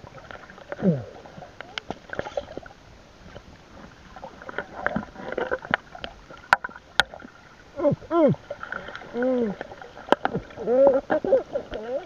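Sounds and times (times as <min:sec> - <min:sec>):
underwater water movement: 0:00.0 - 0:12.0
hum-like voice: 0:00.8 - 0:01.2, 0:07.8 - 0:08.4, 0:09.1 - 0:09.6, 0:10.5 - 0:12.0.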